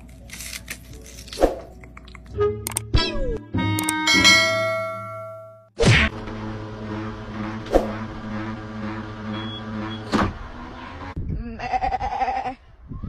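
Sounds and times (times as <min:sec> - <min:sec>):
ball launcher humming: 0:04.4 - 0:11.2
sheep bleating: 0:11.6 - 0:12.6.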